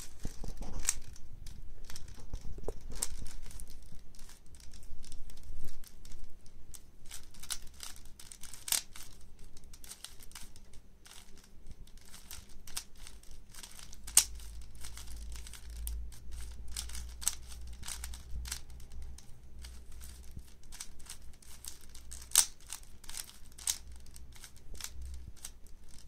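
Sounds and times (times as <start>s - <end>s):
sharp plastic clacks: 0.0s - 26.0s
plastic puzzle cube clicking: 0.2s - 26.0s.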